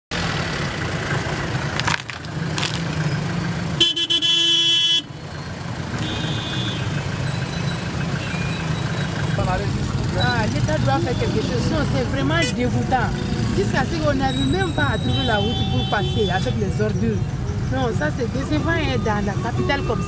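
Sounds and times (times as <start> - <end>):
street traffic engines: 0.1 - 20.0
vehicle horn blaring: 3.8 - 5.1, 6.0 - 6.9, 15.1 - 16.5.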